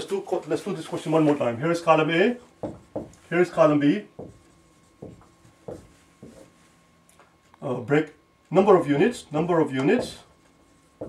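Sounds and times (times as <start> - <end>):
marker writing on whiteboard: 2.6 - 3.2, 4.2 - 6.7.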